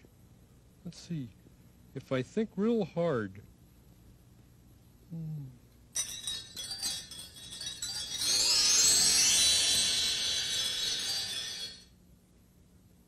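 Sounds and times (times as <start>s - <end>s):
shimmering magic chime effect: 6.0s - 11.9s.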